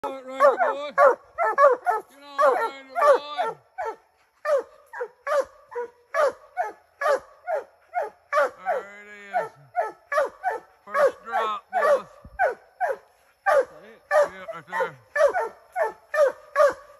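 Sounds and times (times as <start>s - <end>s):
dogs barking: 0.0s - 16.9s.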